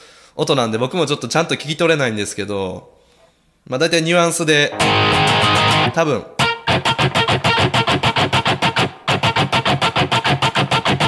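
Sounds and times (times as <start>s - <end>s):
distorted electric guitar strumming: 4.7s - 11.0s.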